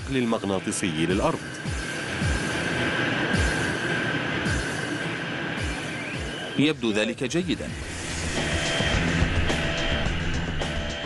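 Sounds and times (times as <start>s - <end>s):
background music booms: 0.0s - 11.0s
machine high whine: 0.0s - 11.0s
machine rumble: 0.9s - 6.6s, 7.5s - 11.0s.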